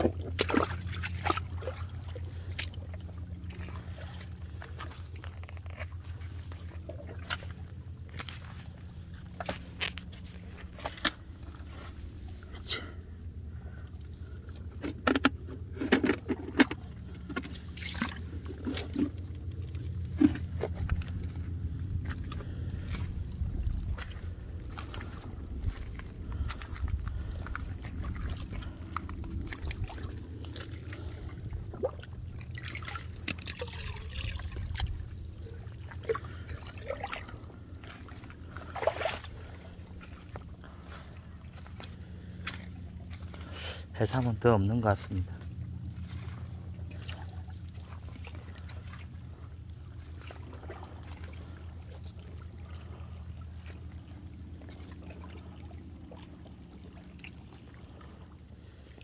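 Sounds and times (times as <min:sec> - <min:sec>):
boots stepping through shallow water: 0:00.0 - 0:59.0
light splashing: 0:00.0 - 0:59.0
steady low rumble: 0:00.0 - 0:59.0
scattered clicks: 0:18.9 - 0:20.2.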